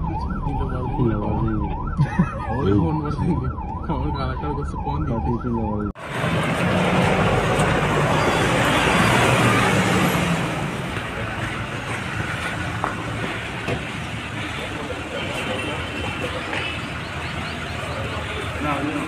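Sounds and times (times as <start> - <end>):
crowd voices: 8.3 - 19.0.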